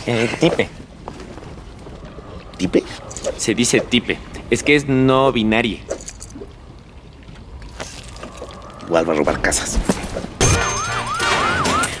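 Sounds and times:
police siren wailing: 10.4s - 12.0s.

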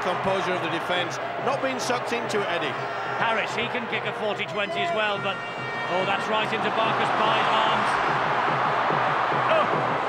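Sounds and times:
stadium crowd roaring: 0.0s - 10.0s.

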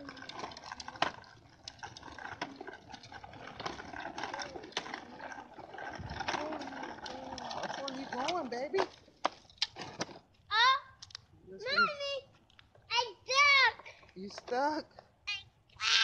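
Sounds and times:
plastic tricycle rolling on concrete: 0.0s - 16.0s.

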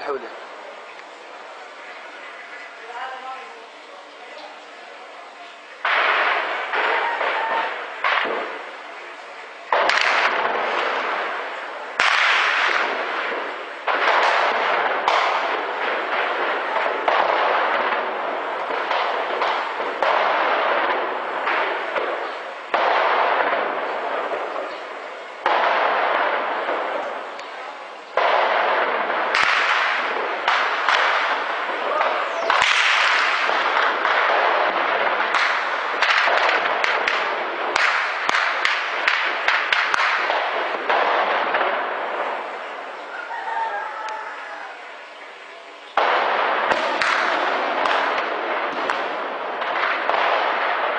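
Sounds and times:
tank gunfire with echo: 5.8s - 44.0s, 45.9s - 50.9s.

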